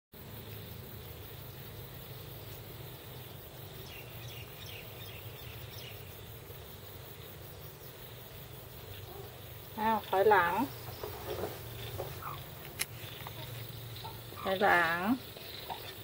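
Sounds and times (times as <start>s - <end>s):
insects chirring: 0.2s - 16.0s.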